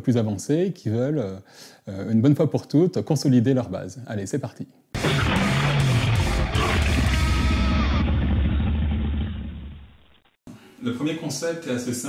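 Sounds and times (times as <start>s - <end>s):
falling tone: 5.0s - 10.2s
intro music with deep rumble: 5.0s - 10.2s.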